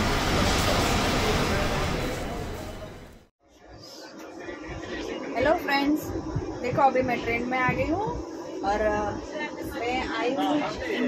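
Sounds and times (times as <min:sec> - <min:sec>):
railway station platform din: 0:00.0 - 0:08.2
voices: 0:00.5 - 0:11.0.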